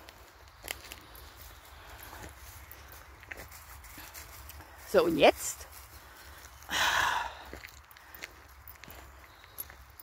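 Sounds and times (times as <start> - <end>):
scuffs and knocks on dirt path: 0.0 - 5.0, 5.6 - 10.0.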